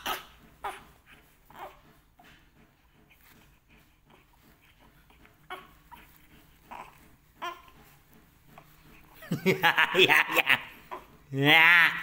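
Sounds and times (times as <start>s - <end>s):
newborn baby crying: 0.0s - 1.8s, 5.0s - 7.8s.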